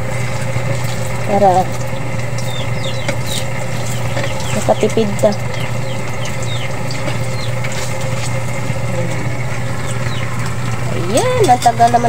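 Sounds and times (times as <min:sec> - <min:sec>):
hot dogs sizzling in a wok: 0:00.0 - 0:12.0
low hum: 0:00.0 - 0:12.0.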